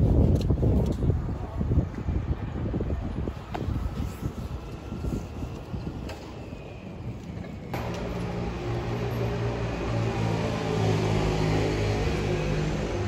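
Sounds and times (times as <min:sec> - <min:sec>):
city street traffic rumble: 0:00.0 - 0:13.0
low traffic hum: 0:00.0 - 0:13.0
wind buffeting microphone: 0:00.0 - 0:13.0.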